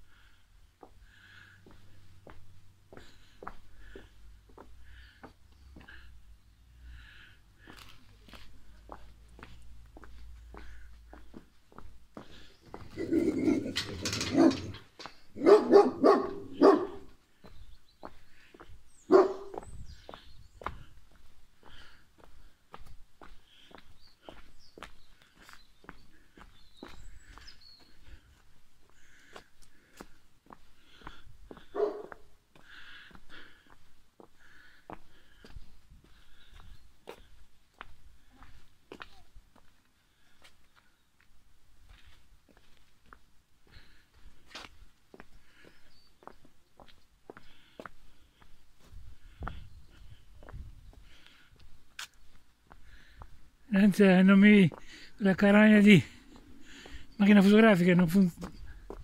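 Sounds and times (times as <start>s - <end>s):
footsteps on cobblestones: 0.8s - 6.1s, 7.6s - 59.0s
dog barking: 13.0s - 14.8s, 15.4s - 17.1s, 19.1s - 19.6s, 31.7s - 32.2s.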